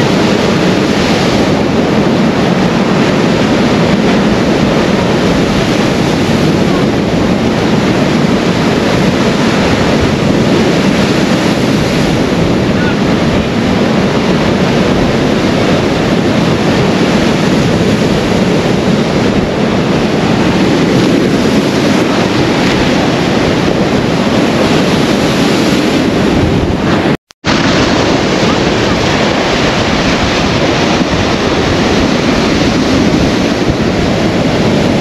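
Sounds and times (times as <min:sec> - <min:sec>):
surf breaking against sea wall: 0:00.0 - 0:35.0
wind buffeting microphone: 0:00.0 - 0:35.0.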